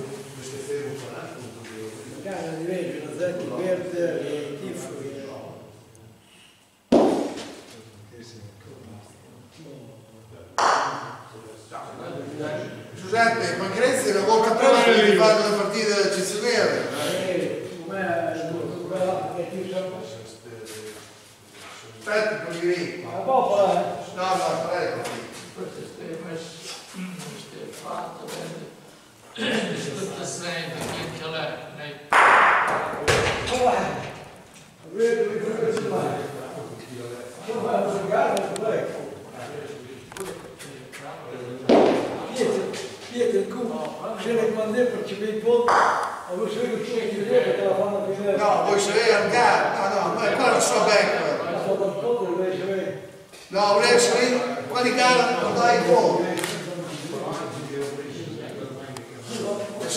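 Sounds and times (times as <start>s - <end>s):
bocce balls knocking: 6.9s - 7.6s, 41.7s - 42.2s
men's voices: 7.0s - 59.9s.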